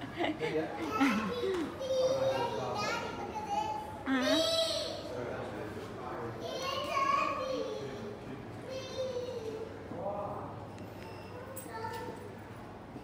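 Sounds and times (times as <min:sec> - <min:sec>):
child calling and chattering: 0:00.8 - 0:05.1, 0:06.4 - 0:09.7, 0:11.4 - 0:12.2.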